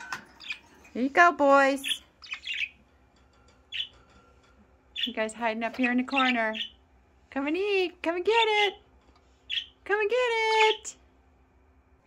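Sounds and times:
budgerigar chirp: 0.4s - 0.7s, 1.8s - 2.8s, 3.7s - 4.0s, 5.8s - 6.8s, 9.5s - 9.8s.

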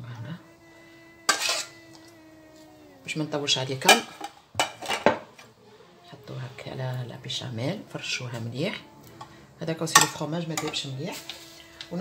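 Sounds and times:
metal spoon clinking on metal bowl: 1.3s - 1.7s, 9.9s - 10.9s.

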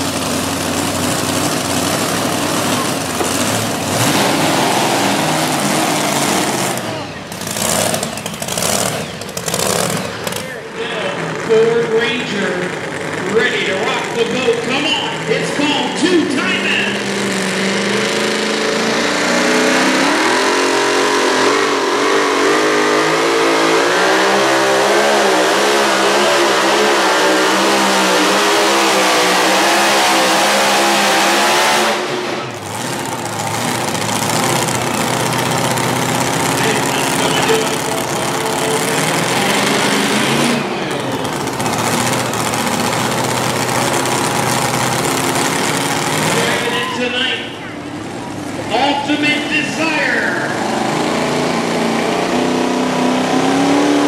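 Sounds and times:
pulling truck engine at full throttle: 0.0s - 54.0s.

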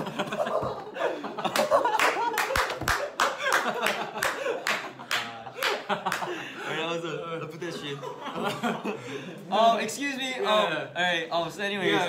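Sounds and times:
people laughing: 0.0s - 9.5s
hands clapping: 1.4s - 6.4s.

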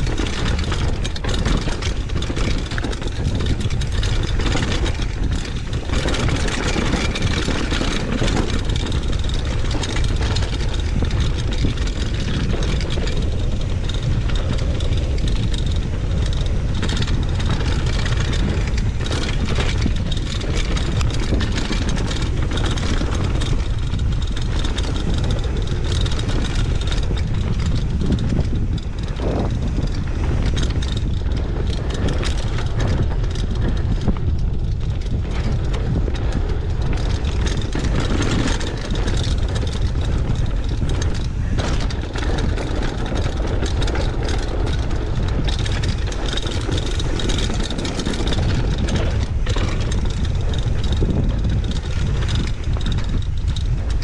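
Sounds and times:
bike rattling and clicking: 0.0s - 54.0s
bike tyres rolling on dirt: 0.0s - 54.0s
wind rumbling on microphone: 0.0s - 54.0s.

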